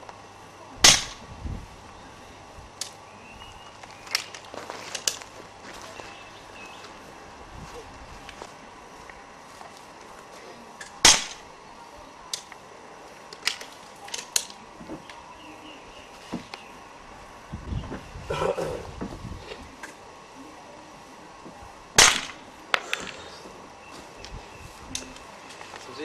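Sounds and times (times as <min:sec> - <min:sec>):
air gun shot: 0:00.8 - 0:01.2, 0:11.0 - 0:11.4, 0:22.0 - 0:23.2.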